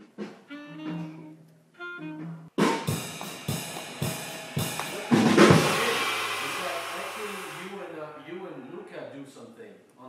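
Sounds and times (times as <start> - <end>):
band playing accented hits: 2.0 - 7.8
loud ringing band hit: 2.8 - 7.6.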